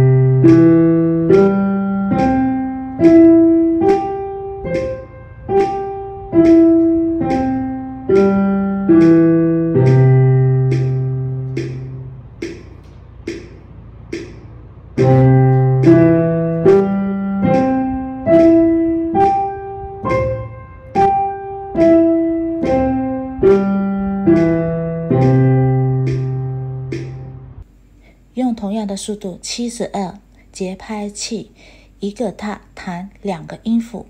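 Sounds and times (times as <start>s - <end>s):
metronome clicks: 0.0s - 27.6s
piano arpeggio: 0.0s - 27.6s.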